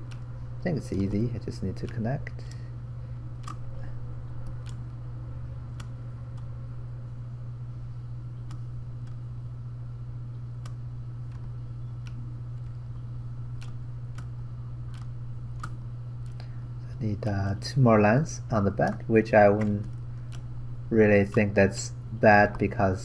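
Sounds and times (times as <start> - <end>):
computer mouse clicks: 0.0 - 0.3, 0.9 - 2.6, 3.4 - 3.7, 4.4 - 4.9, 5.7 - 6.5, 10.6 - 12.8, 13.6 - 14.3, 14.9 - 16.5, 18.8 - 20.5
steady low hum: 0.0 - 23.0.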